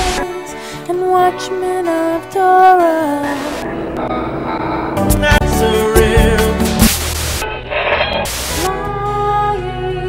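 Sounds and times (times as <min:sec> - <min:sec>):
music with long held tones: 0:00.0 - 0:10.0
static-like hiss burst: 0:06.7 - 0:07.5, 0:08.3 - 0:08.7.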